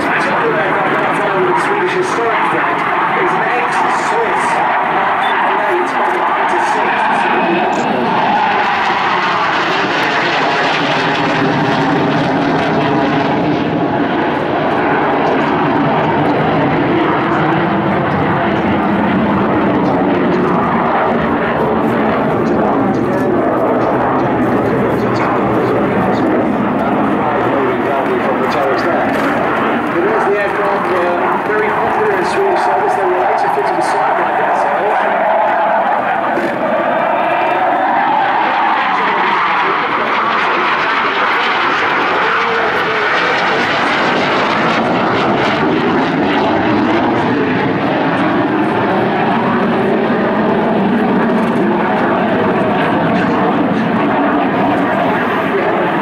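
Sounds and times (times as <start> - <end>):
jet engine roar and whine: 0.0 - 56.0.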